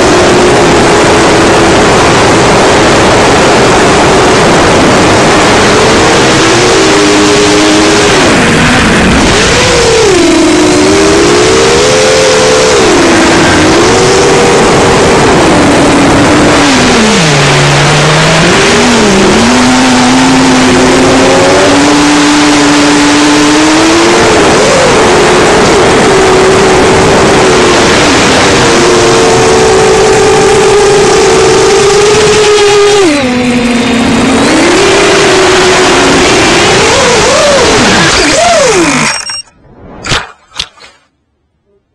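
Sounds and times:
drone motors whining: 0.0s - 41.1s.

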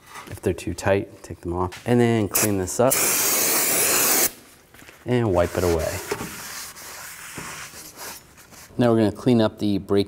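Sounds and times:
cloth rag rubbing on metal: 5.2s - 8.9s.

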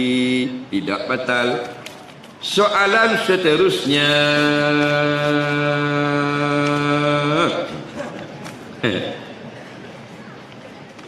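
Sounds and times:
man singing long note: 3.4s - 7.7s.

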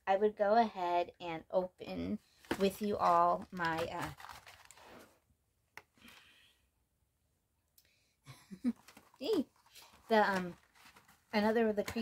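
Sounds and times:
packaging rustling: 2.4s - 5.1s, 8.6s - 12.0s.

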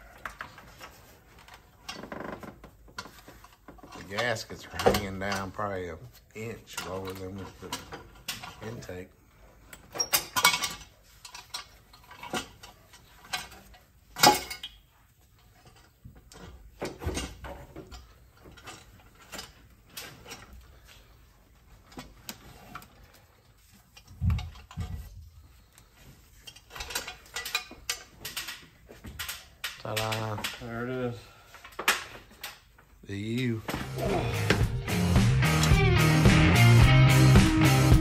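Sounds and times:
metal parts knocking and clanking: 0.2s - 5.7s, 6.6s - 9.0s, 9.8s - 14.8s, 15.4s - 20.7s, 23.9s - 25.2s, 26.4s - 30.7s.

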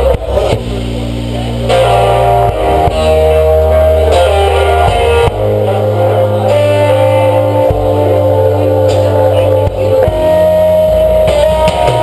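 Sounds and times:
electric guitars and bass chords: 0.0s - 12.0s.

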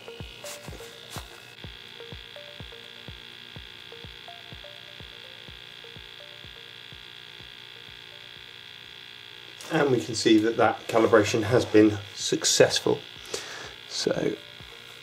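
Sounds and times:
pump humming with soft pulses: 0.0s - 15.0s.

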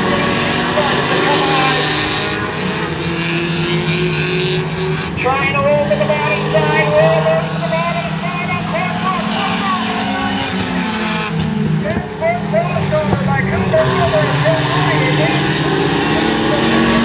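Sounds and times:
race car engines: 0.0s - 17.0s.

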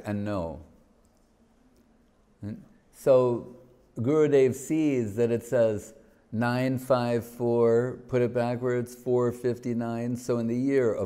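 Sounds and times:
man speaking: 0.0s - 0.8s, 2.4s - 11.0s.

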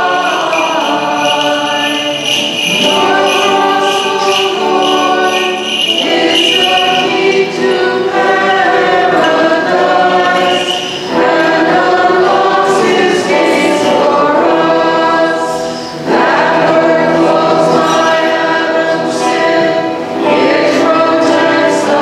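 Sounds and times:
group singing a hymn: 0.0s - 22.0s.

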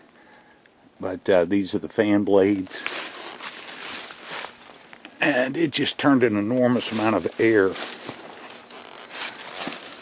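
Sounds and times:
footsteps in dry leaves: 2.4s - 5.0s, 6.5s - 10.0s.

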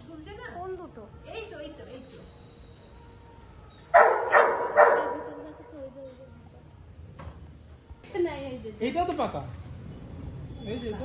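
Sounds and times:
dog barking: 3.9s - 5.4s.

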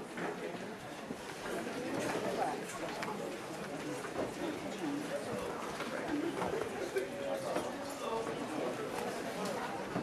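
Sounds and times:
murmur of many voices: 0.0s - 10.0s.

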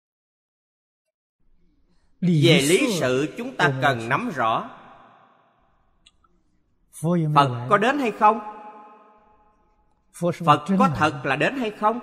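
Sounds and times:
short breath: 1.6s - 2.2s
man speaking: 2.2s - 4.7s, 7.0s - 8.4s, 10.2s - 12.0s.

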